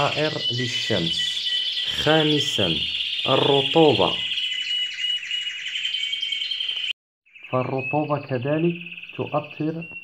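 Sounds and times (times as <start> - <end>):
birds singing rapid trills: 0.0 - 10.0.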